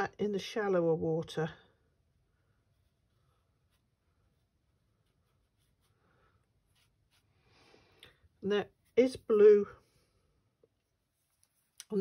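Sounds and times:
brush dabbing paint on paper: 1.9s - 9.7s, 10.6s - 12.0s.

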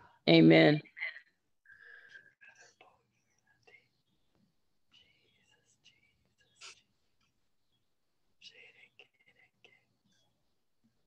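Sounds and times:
faint whispering: 0.0s - 7.3s, 8.4s - 10.4s.

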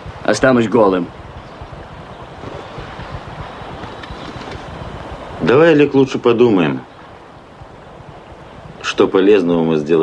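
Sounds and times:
wind-like background noise: 0.0s - 10.0s.

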